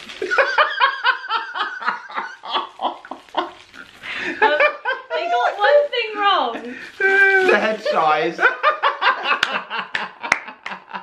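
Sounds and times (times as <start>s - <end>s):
group laughing: 0.3s - 5.6s, 7.3s - 11.0s.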